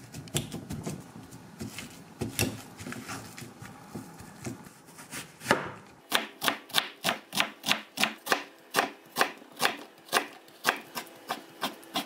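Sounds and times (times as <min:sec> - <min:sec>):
knife chopping on wooden board: 0:01.6 - 0:03.1, 0:04.0 - 0:12.0.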